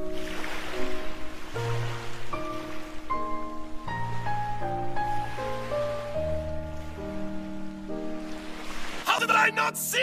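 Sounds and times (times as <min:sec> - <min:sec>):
slow piano music: 0:00.0 - 0:10.0.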